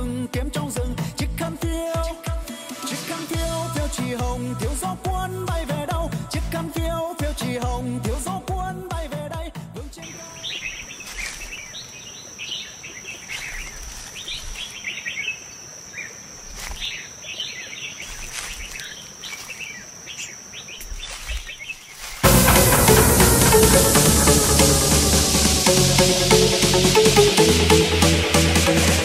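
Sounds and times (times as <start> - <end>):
electronic dance music: 0.0 - 10.0, 22.2 - 29.0
music: 0.0 - 10.1, 22.2 - 29.0
birds chirping: 9.9 - 23.2.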